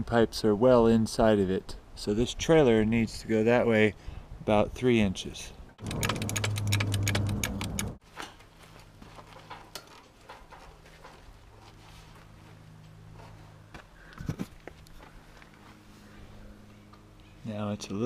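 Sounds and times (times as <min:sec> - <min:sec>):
rapid metallic clicking: 0:05.8 - 0:08.0.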